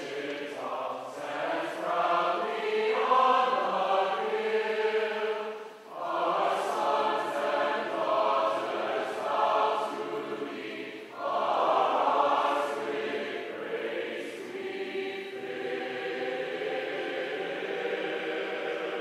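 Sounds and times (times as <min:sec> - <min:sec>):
choir singing: 0:00.0 - 0:19.0.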